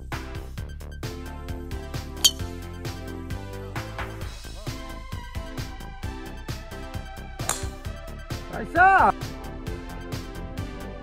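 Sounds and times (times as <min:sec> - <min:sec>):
background music with steady beat: 0:00.0 - 0:11.0
golf club striking ball: 0:02.2 - 0:02.6, 0:07.4 - 0:07.9.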